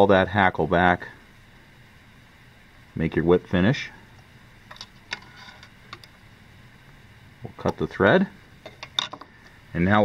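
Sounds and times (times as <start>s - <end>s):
rustling of hands and tools: 4.1s - 6.2s, 8.6s - 9.7s.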